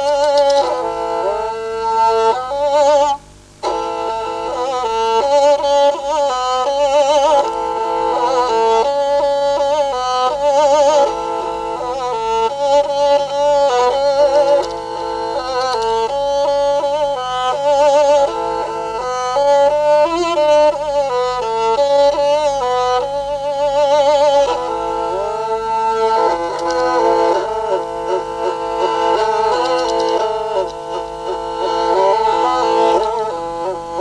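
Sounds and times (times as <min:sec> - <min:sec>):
bowed fiddle melody: 0:00.0 - 0:34.0.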